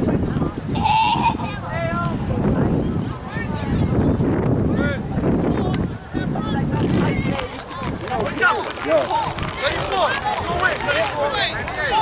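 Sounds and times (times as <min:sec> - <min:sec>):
children's voices calling out: 0:00.7 - 0:01.7.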